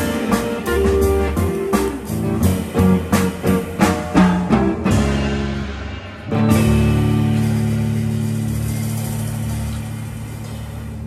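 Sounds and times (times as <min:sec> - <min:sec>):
upright bass: 0:00.0 - 0:11.0.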